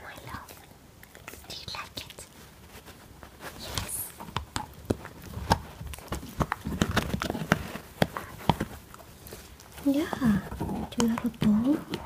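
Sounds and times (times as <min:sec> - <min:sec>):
puppy teeth gnawing on bone: 0:00.4 - 0:01.5, 0:04.1 - 0:12.0.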